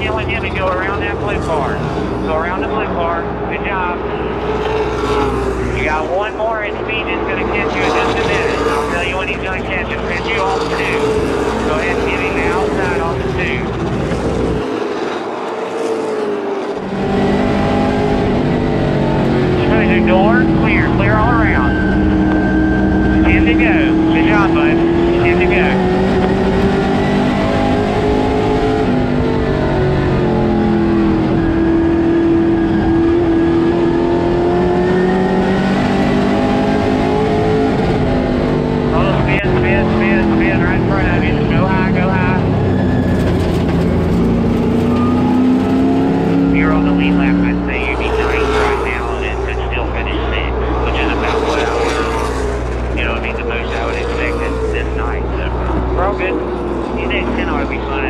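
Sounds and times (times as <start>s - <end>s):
voices: 0.0s - 4.5s, 5.7s - 13.8s, 19.5s - 22.1s, 23.1s - 25.8s, 38.9s - 42.7s, 46.4s - 58.0s
race car engine under load: 0.0s - 58.0s
race cars passing: 0.0s - 58.0s.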